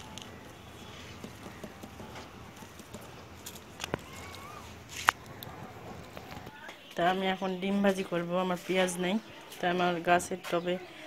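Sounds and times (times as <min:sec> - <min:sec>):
leaves and soil rustling: 0:00.0 - 0:06.5.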